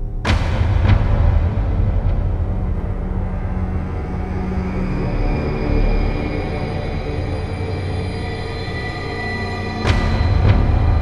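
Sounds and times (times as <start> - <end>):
low rumbling drone score: 0.0 - 11.0.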